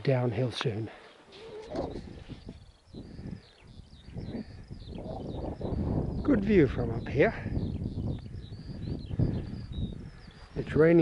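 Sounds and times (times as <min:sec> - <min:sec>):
small birds chirping: 0:00.0 - 0:11.0
wind rumble on microphone: 0:01.4 - 0:11.0.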